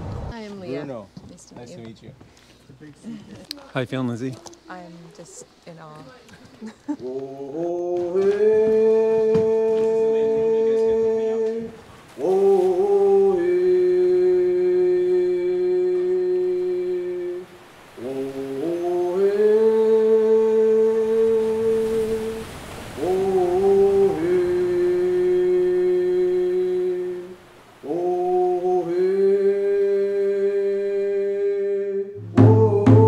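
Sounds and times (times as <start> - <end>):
man humming a chant: 7.0 - 22.4, 23.0 - 33.0
hand drum beating: 32.2 - 33.0.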